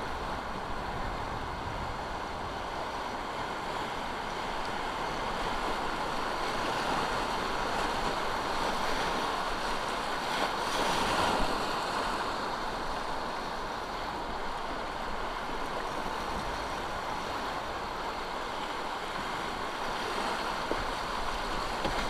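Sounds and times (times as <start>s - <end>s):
river rapids rushing: 0.0s - 22.0s.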